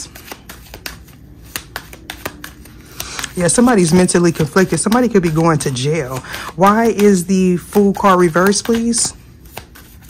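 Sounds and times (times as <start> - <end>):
cards snapping and clicking: 0.1 - 10.0.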